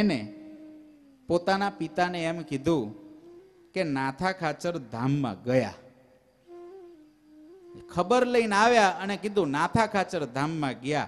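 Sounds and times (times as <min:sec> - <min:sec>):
person humming: 0:00.2 - 0:01.5, 0:02.8 - 0:03.8.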